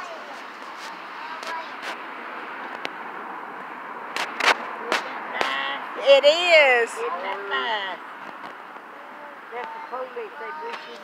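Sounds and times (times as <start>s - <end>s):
faint distant voices: 4.6s - 11.0s.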